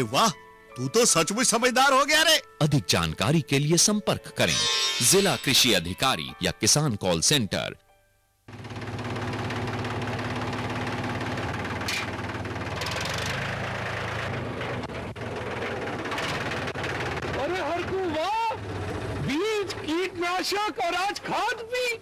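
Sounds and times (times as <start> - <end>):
man talking: 0.0 - 7.8, 17.4 - 18.6, 19.2 - 22.0
tractor engine idling: 8.5 - 21.8.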